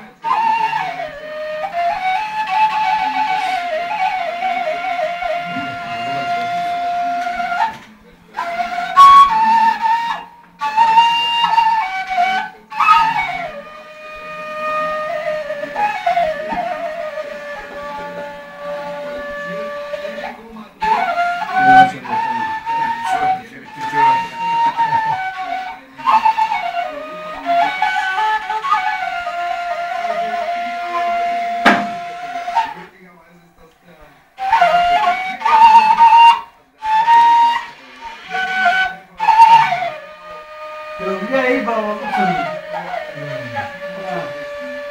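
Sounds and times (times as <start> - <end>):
wooden flute folk melody: 0.0 - 44.9.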